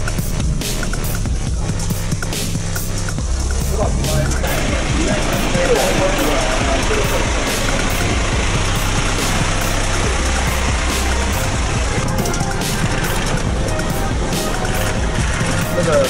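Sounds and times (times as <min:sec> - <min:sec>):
street traffic noise: 0:00.0 - 0:16.0
vehicle engine idling: 0:00.0 - 0:16.0.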